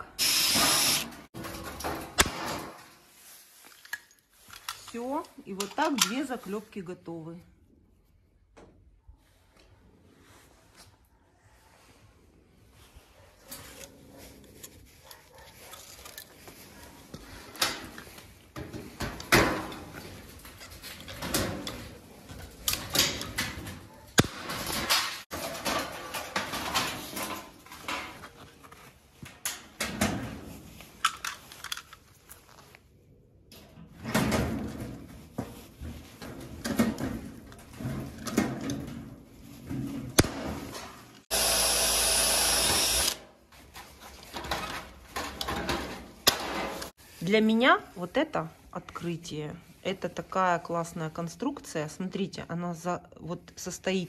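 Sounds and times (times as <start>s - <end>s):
drill drilling into metal: 0.0s - 1.2s, 41.3s - 43.2s.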